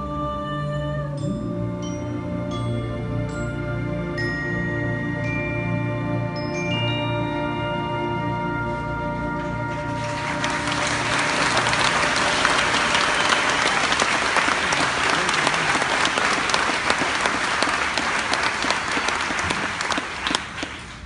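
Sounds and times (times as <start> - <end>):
orchestra held chord: 8.4 - 19.9
audience applauding: 9.7 - 21.0.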